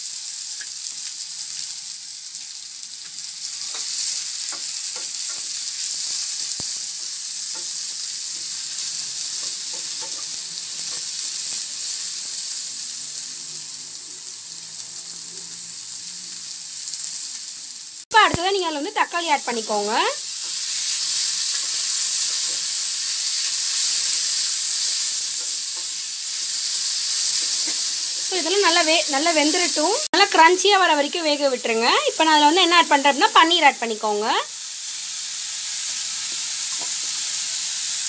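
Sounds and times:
vegetables sizzling in a pan: 0.0s - 38.0s.

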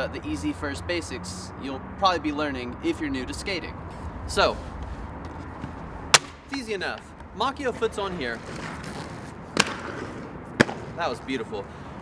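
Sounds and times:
skates scraping along ledge: 7.6s - 11.0s
skates smacking the ground: 7.8s - 11.0s
skates knocking on concrete ledge: 8.4s - 11.0s.

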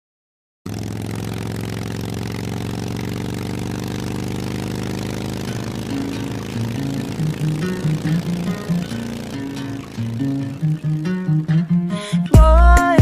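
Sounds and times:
motorcycle engine idling: 0.7s - 13.0s
music: 10.2s - 13.0s.

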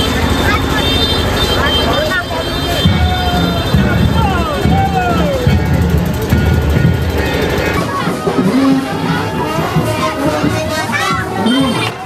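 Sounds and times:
heavy low drum beats: 0.0s - 12.0s
voices calling and chanting: 0.0s - 12.0s.

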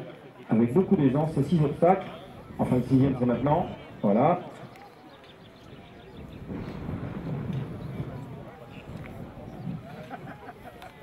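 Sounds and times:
faint murmur of voices: 0.0s - 11.0s.

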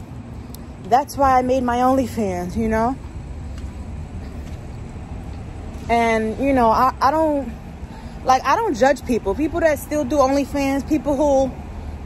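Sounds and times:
low rumble of road traffic: 0.0s - 12.0s.

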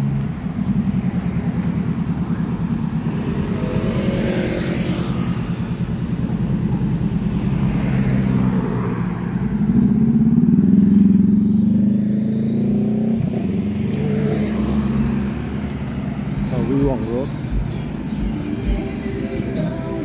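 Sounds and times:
cars driving past: 0.0s - 20.0s
engine accelerating: 0.0s - 20.0s.

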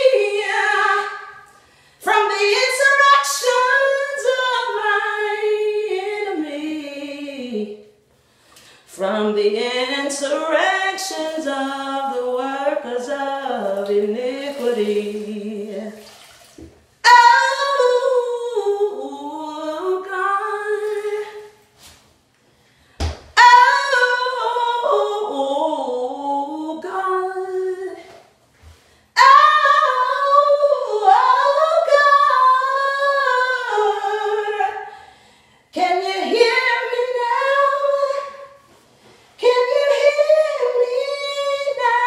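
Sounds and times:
woman singing unaccompanied: 0.0s - 7.9s, 8.9s - 16.1s, 17.0s - 21.6s, 23.4s - 28.1s, 29.2s - 34.9s, 35.7s - 38.7s, 39.4s - 42.0s.

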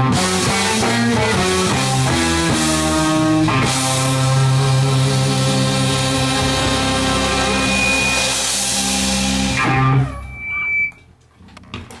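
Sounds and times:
jazz-rock band sustained chord: 0.0s - 10.0s
brief high tone: 7.0s - 11.0s.

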